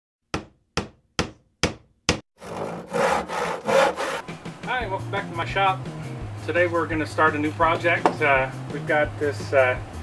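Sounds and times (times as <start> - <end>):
hand saw cutting wood: 2.4 - 4.3.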